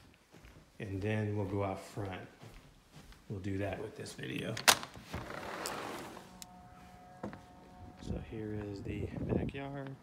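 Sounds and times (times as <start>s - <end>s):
sliding glass door rolling open: 5.1s - 6.4s.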